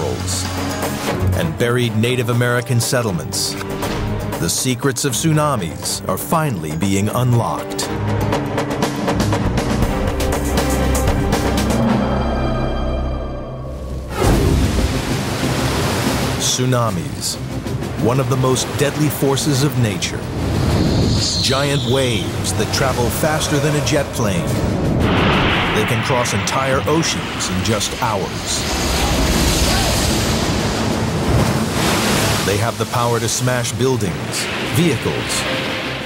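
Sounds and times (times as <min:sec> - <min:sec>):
seawater rushing ashore: 0:04.2 - 0:36.0
falling swoosh: 0:23.0 - 0:30.6.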